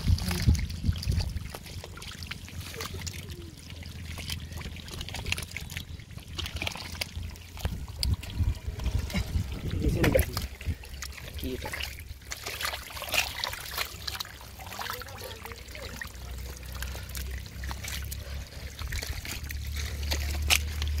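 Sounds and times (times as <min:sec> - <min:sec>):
low rumble: 0:00.0 - 0:14.8, 0:15.4 - 0:21.0
water trickling: 0:00.0 - 0:21.0
wet mud squelching: 0:00.0 - 0:21.0.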